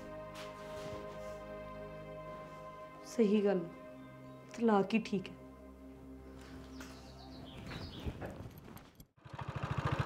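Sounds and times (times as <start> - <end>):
soft background music: 0.0 - 8.2
motorcycle engine running: 9.2 - 10.0.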